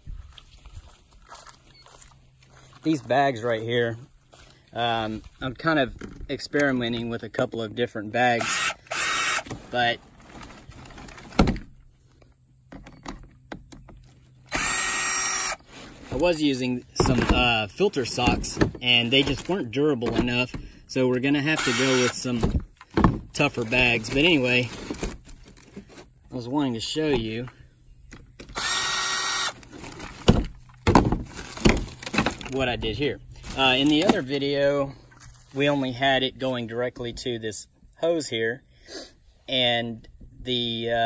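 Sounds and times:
cordless drill whining: 0:08.4 - 0:09.6, 0:14.5 - 0:15.7, 0:21.6 - 0:22.4, 0:28.5 - 0:29.6.

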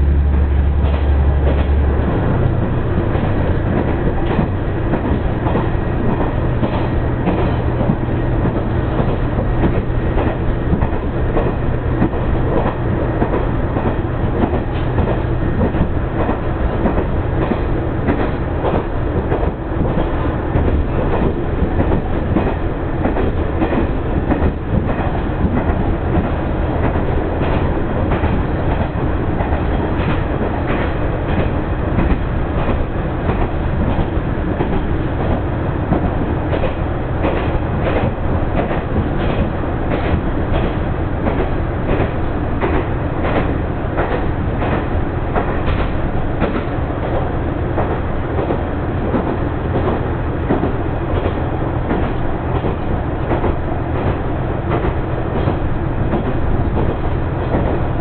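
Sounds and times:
railcar engine and wheels rumbling: 0:00.0 - 0:58.0
wheels clacking over rail joints: 0:00.4 - 0:58.0.

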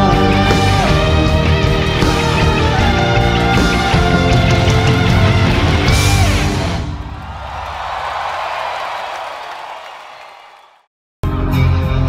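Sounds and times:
crowd applauding and cheering: 0:00.4 - 0:10.9.

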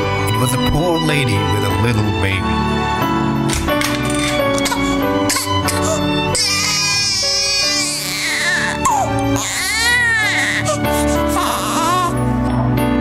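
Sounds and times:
background music: 0:00.0 - 0:13.0
baby crying: 0:04.5 - 0:12.3.

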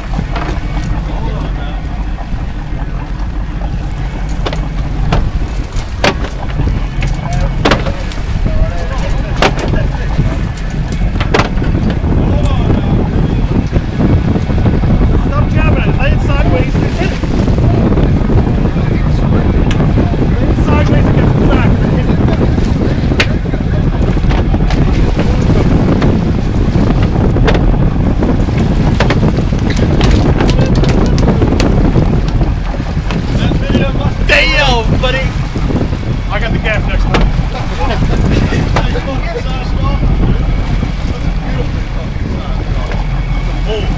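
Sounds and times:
boat engine running: 0:00.0 - 0:43.9
water wash: 0:00.0 - 0:43.9
wind noise on microphone: 0:00.0 - 0:43.9.

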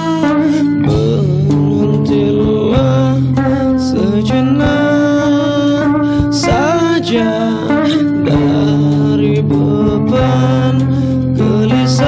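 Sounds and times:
bass: 0:00.0 - 0:12.0
guitar chords: 0:00.0 - 0:12.0
drum hits: 0:00.8 - 0:10.8.

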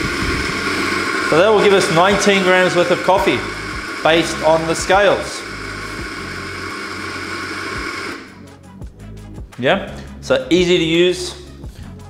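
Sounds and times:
coffee grinder grinding beans: 0:00.0 - 0:08.4.

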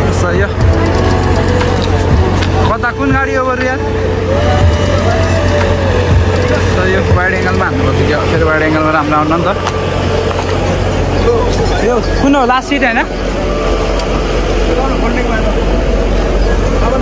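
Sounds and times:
bus engines idling: 0:00.0 - 0:17.0
voices: 0:00.0 - 0:17.0
snatches of melody: 0:00.6 - 0:11.6.

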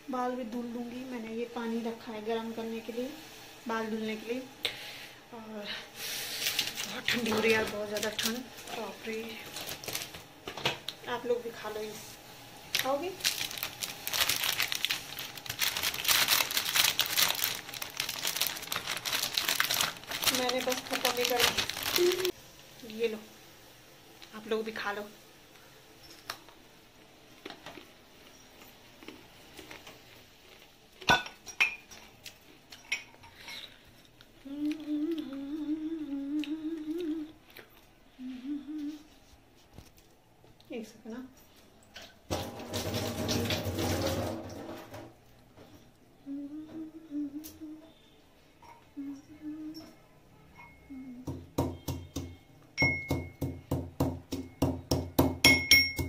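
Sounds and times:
plastic bag crinkling: 0:06.4 - 0:10.4, 0:12.7 - 0:22.3
woman humming: 0:21.9 - 0:22.3, 0:34.4 - 0:37.4, 0:38.1 - 0:39.2, 0:46.2 - 0:48.0, 0:48.9 - 0:50.0, 0:50.8 - 0:51.4.

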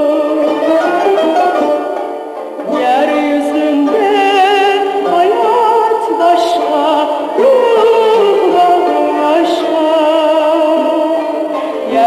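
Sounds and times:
woman singing with vibrato: 0:00.0 - 0:01.8, 0:02.6 - 0:12.0
instrumental accompaniment: 0:00.0 - 0:12.0.

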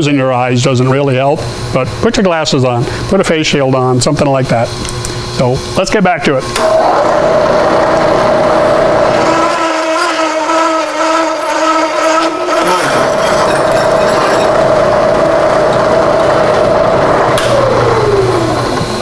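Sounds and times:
milling machine cutting steel: 0:06.6 - 0:19.0.

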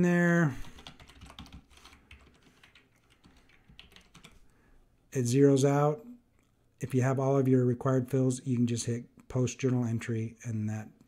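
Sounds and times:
computer keyboard typing: 0:00.6 - 0:04.4.

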